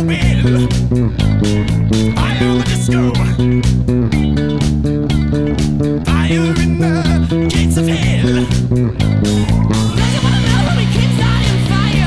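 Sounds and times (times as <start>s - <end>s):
disco rock recording: 0.0s - 12.0s
electric bass played fingerstyle: 0.0s - 12.0s.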